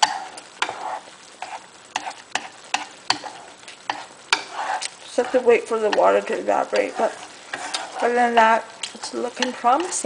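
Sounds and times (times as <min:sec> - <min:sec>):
chopsticks stirring in pan: 0:00.0 - 0:10.0
sauce sizzling in frying pan: 0:00.0 - 0:10.0.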